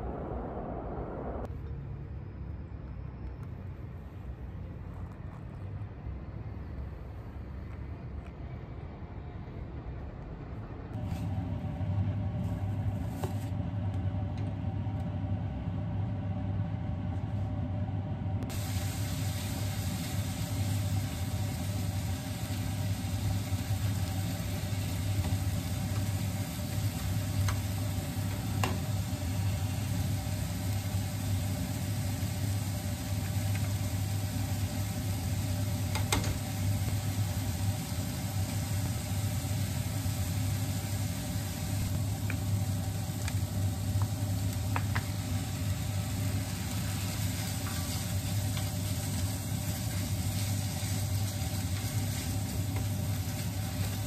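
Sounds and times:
low steady hum: 0.0 - 54.0
meat sizzling in a frying pan: 18.5 - 54.0.

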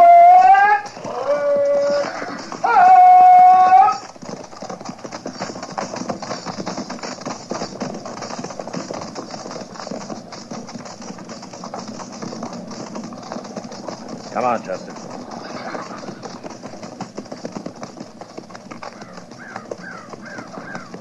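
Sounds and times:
many horses' hoofbeats: 0.0 - 21.0.

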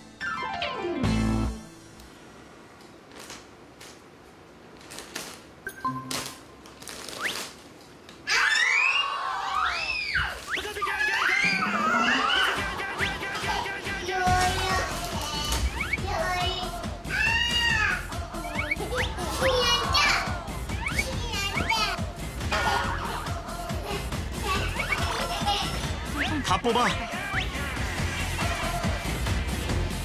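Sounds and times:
wet wipes rustling from packet: 4.6 - 5.6, 6.6 - 7.7
light background music: 12.5 - 30.0.

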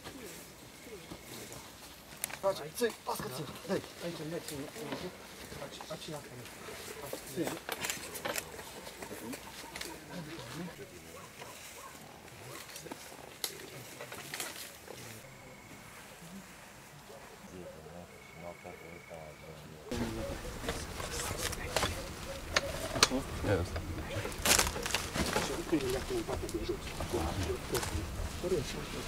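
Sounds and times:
indistinct voices: 0.0 - 29.0.

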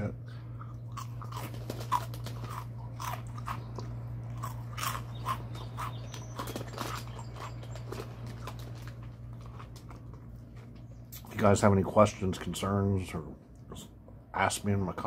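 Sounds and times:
person chewing crunchy snack: 0.5 - 10.7.

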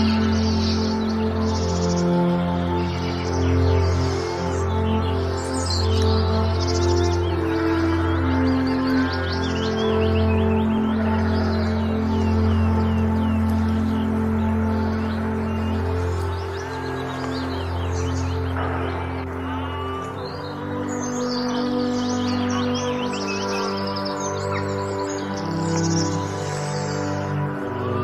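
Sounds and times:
birds chirping: 0.0 - 28.0
slow ambient music: 0.0 - 28.0.

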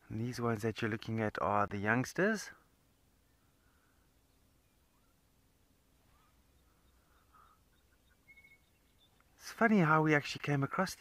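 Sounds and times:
faint high chirps: 3.1 - 9.4.

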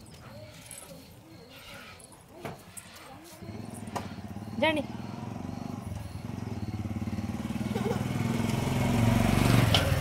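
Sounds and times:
vehicle engine running: 3.4 - 10.0.

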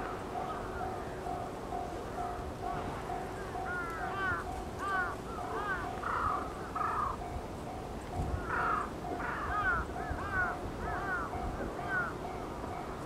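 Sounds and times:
birds calling and cawing: 3.1 - 7.4, 8.2 - 12.5.

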